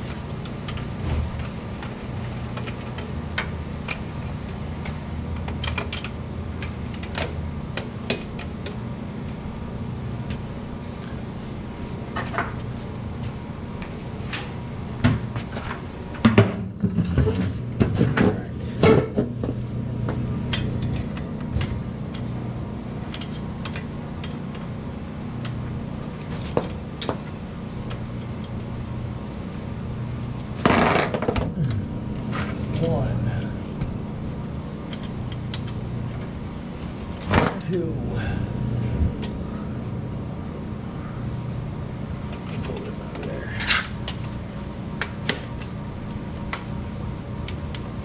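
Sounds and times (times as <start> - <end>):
steady low hum: 0.0 - 48.0.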